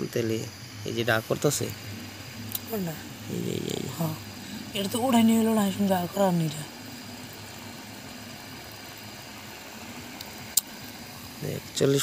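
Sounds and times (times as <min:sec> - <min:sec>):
pump humming: 0:00.0 - 0:12.0.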